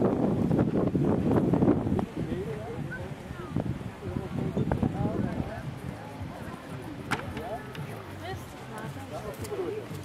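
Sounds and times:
wind blowing across microphone: 0.0 - 10.0.

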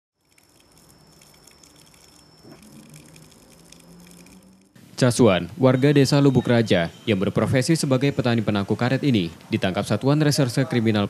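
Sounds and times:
thin high-pitched whine: 0.2 - 4.8
low hum: 0.2 - 5.0.

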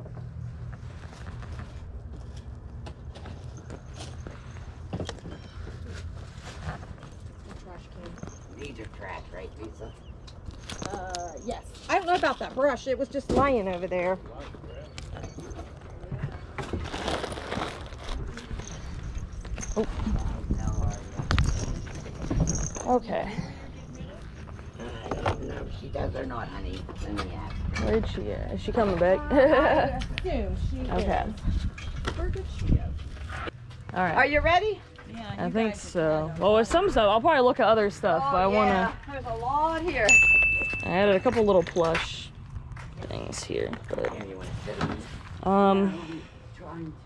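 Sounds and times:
rustling of tags and packaging: 15.1 - 23.0.

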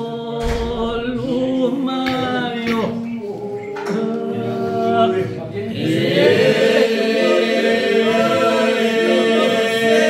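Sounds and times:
men singing unaccompanied: 0.0 - 10.0.

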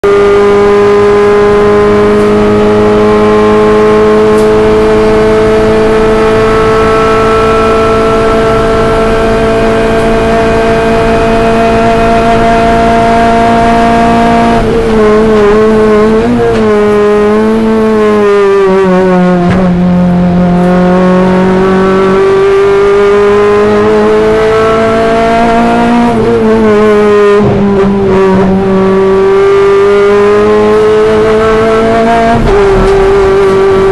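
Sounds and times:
race car engine at high revs: 0.0 - 33.9.

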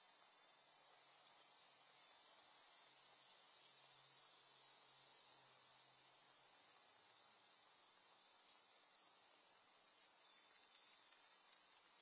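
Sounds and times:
faint steady hiss: 0.0 - 12.0
tiny ticks: 10.2 - 12.0.

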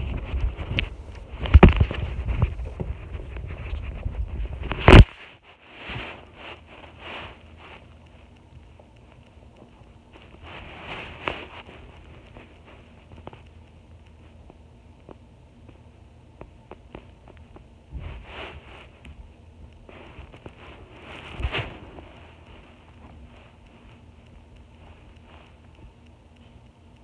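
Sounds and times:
microphone handling noise: 0.0 - 5.2, 16.5 - 19.2, 19.8 - 23.3
faint rustles: 0.0 - 27.0.

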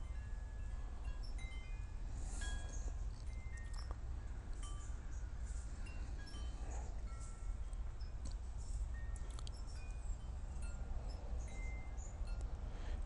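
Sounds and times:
wind chimes tinkling: 0.0 - 12.8
low steady hum: 0.0 - 13.0.

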